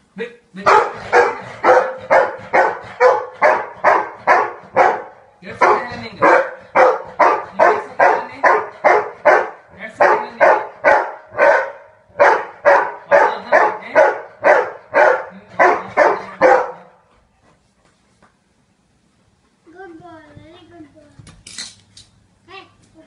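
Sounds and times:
dog barking: 0.6s - 17.0s.

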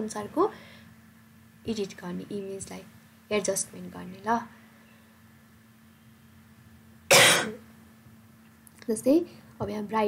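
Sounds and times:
person coughing: 7.1s - 7.6s.

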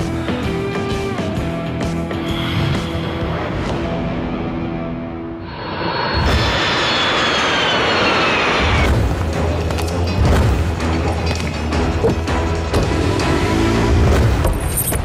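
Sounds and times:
background music: 0.0s - 5.7s, 8.7s - 15.0s
jet aircraft passing overhead: 5.5s - 8.9s.

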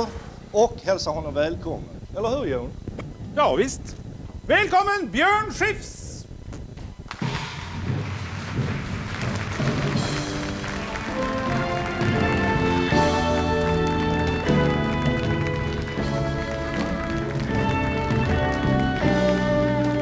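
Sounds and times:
band playing instrumental intro: 7.2s - 20.0s.

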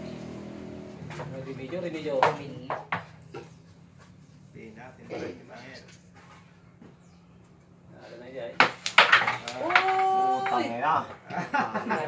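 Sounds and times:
game pieces clacking on wooden table: 8.6s - 10.6s
man exclaiming loudly: 9.5s - 11.1s.

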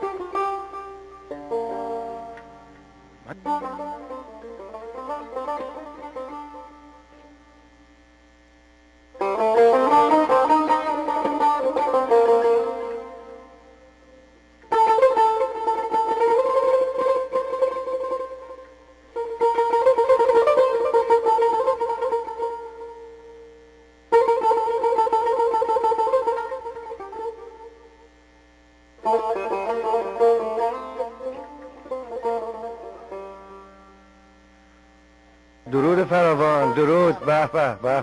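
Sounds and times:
plucked lute with tremolo: 0.0s - 7.7s, 9.2s - 23.5s, 24.1s - 28.0s, 29.0s - 34.5s, 35.7s - 38.0s.

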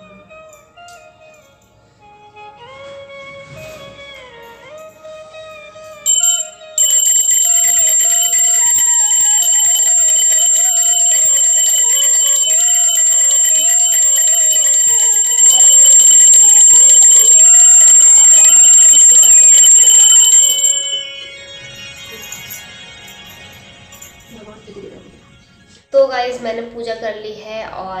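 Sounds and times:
hand bell ringing rapidly: 6.1s - 24.5s.

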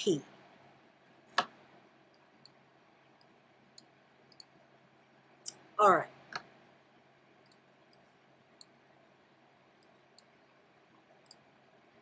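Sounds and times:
computer mouse clicks: 3.2s - 4.6s, 7.4s - 8.8s, 11.2s - 11.5s.

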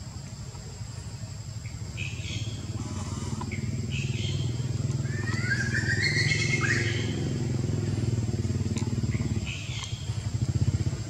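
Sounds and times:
motorcycle engine running: 1.5s - 11.0s
gliding call: 2.8s - 7.8s
high bird chirps: 3.4s - 7.3s.

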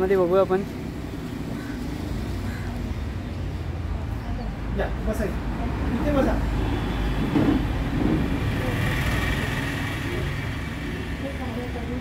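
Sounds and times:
city street rumble: 0.0s - 12.0s.

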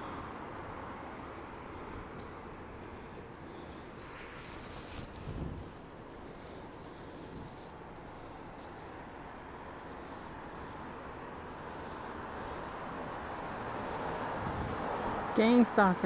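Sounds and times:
city street noise at night: 0.0s - 16.0s.

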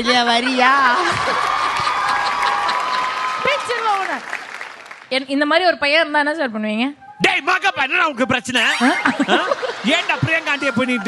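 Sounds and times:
audience applauding: 0.6s - 5.1s, 9.3s - 11.0s.

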